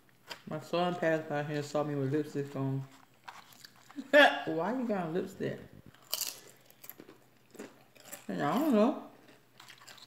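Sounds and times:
crunch of biting food: 5.9 - 8.3, 9.2 - 10.0.

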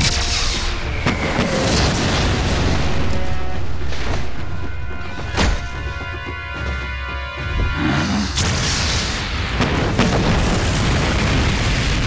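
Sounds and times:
booming explosions: 0.0 - 3.1, 8.3 - 12.0
dramatic background music: 0.0 - 12.0.

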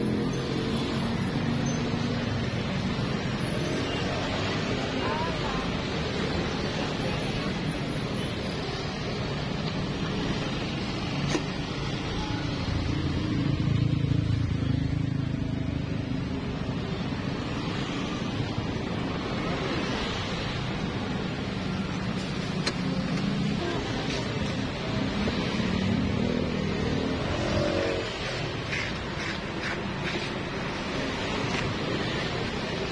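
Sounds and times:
road traffic passing: 0.0 - 32.9.

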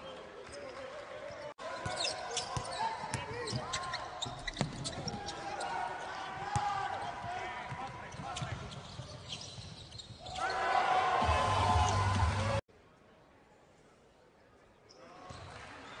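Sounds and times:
players' voices: 0.0 - 9.6
sneakers squeaking: 0.1 - 10.9.

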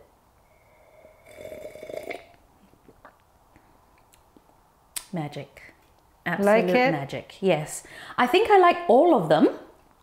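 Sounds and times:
slurping sip of tea: 0.5 - 2.4.

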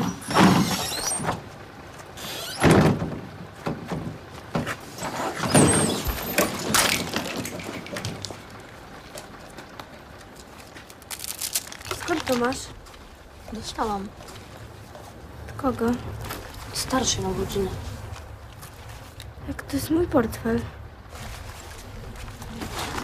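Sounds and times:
tram doors knocking and rattling: 0.0 - 10.2
tram running noise: 0.0 - 23.0.

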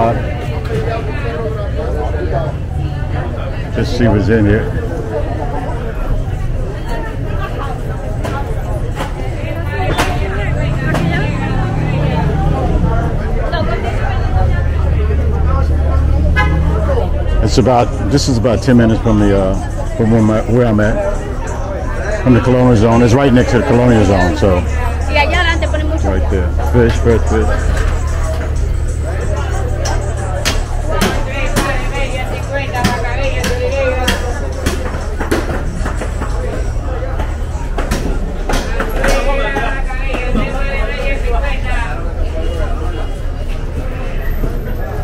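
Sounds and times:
people chattering: 0.0 - 45.0
people talking: 0.0 - 45.0
vehicle engine idling: 0.0 - 45.0
sharp knocks and clacks: 32.8 - 40.5.

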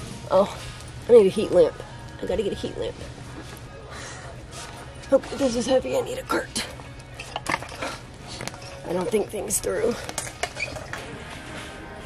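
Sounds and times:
faint music: 0.0 - 12.0
steady background hum: 0.0 - 12.0.

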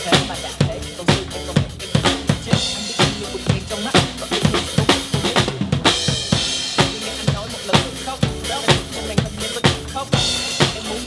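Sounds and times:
backing track: 0.0 - 11.0
drum kit beat: 0.0 - 11.0.

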